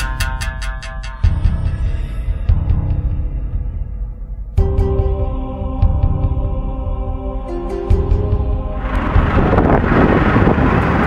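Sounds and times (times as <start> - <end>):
vehicle engines rumbling: 6.2 - 11.0.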